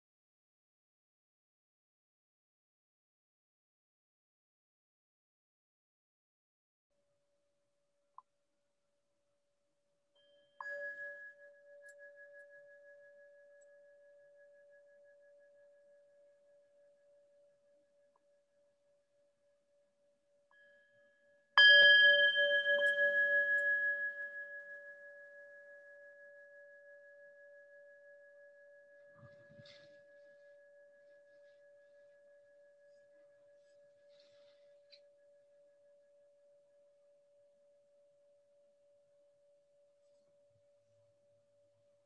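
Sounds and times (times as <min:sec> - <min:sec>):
singing bowl ringing: 0:10.2 - 0:40.5.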